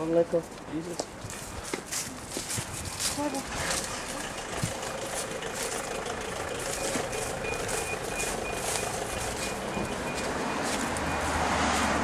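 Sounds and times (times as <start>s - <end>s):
footsteps on fallen leaves: 0.0s - 12.0s.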